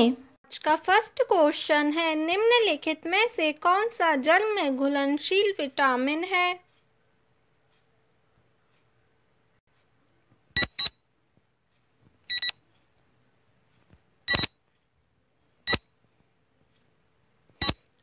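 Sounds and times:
high electronic beeps: 0:10.6 - 0:11.0, 0:12.3 - 0:12.6, 0:14.3 - 0:14.5, 0:17.6 - 0:17.8.

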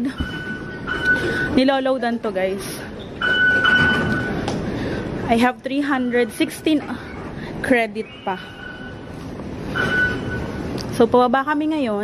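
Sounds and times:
thin steady ringing tone: 0:00.0 - 0:01.6, 0:03.1 - 0:04.4, 0:08.1 - 0:10.7
metro train rumble: 0:00.0 - 0:12.0.

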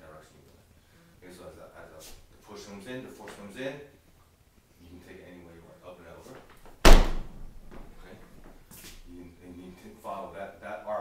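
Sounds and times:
body thudding on wooden floor: 0:06.8 - 0:08.6.

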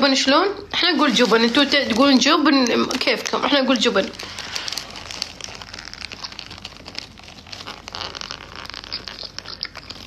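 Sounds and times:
paper wrapper crinkling: 0:00.7 - 0:10.0
biting and chewing: 0:04.2 - 0:10.0.

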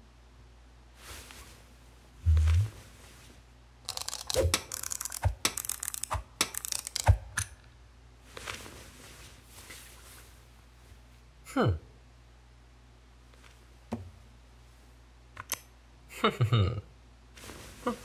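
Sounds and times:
metal clamp clicks and knocks: 0:03.9 - 0:07.6.

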